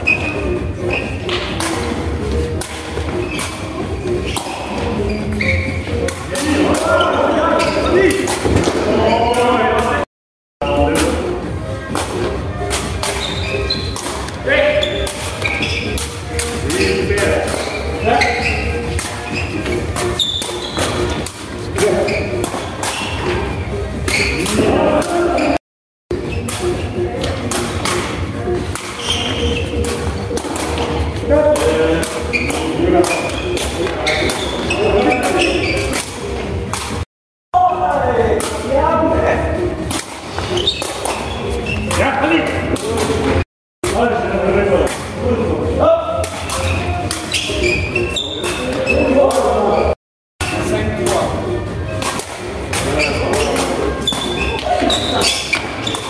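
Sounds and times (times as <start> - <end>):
players' voices: 0.0 - 25.6, 26.6 - 36.7, 37.6 - 56.0.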